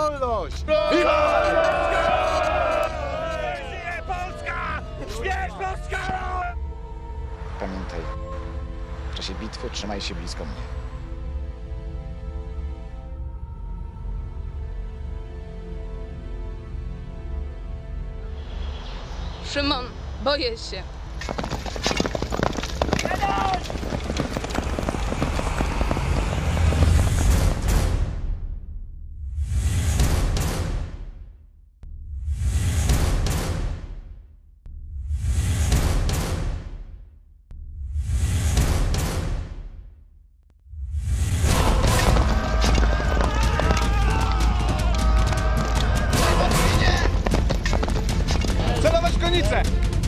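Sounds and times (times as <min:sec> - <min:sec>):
men shouting: 0:00.6 - 0:06.6, 0:41.5 - 0:47.4
horses galloping on sand: 0:21.2 - 0:27.3, 0:41.6 - 0:49.0.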